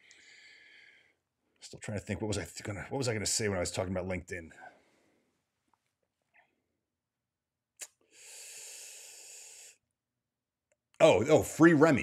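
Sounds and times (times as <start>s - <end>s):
man breathing: 0.0s - 1.2s, 8.0s - 9.8s.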